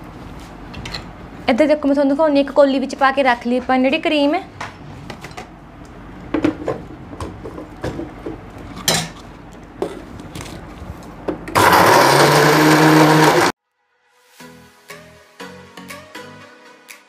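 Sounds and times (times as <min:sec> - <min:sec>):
electric mixer grinder running: 0:11.6 - 0:13.6.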